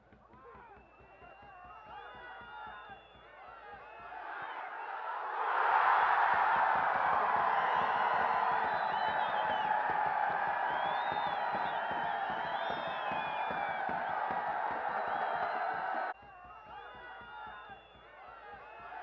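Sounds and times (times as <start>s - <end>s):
stadium crowd cheering: 0.0s - 19.0s.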